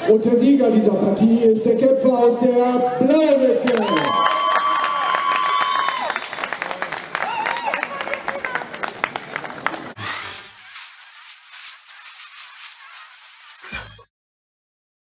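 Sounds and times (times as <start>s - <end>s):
spectators clapping and cheering: 3.2s - 10.2s
thin hissing outro sound: 10.1s - 13.8s.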